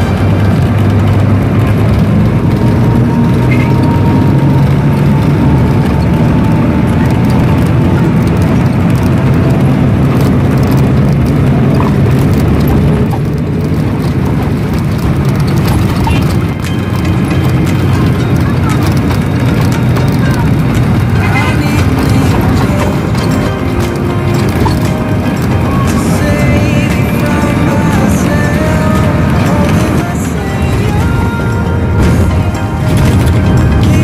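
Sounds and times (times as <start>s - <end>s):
bus engine hum: 0.0s - 34.0s
road and tyre noise: 0.0s - 34.0s.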